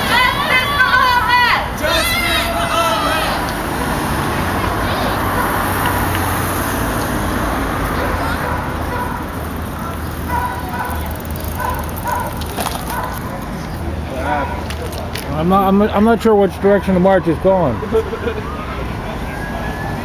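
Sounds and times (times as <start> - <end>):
distant crowd talking: 0.0 - 20.0.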